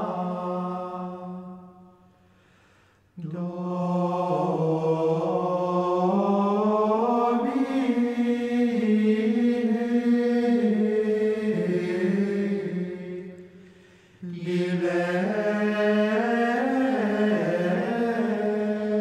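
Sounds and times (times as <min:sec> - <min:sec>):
voices singing plainchant: 0:03.2 - 0:13.6, 0:14.2 - 0:19.0.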